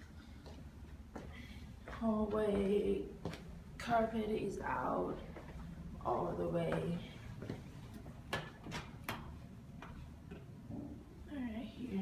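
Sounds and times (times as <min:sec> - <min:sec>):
footsteps on bare subfloor: 0:00.4 - 0:03.9, 0:05.2 - 0:10.6.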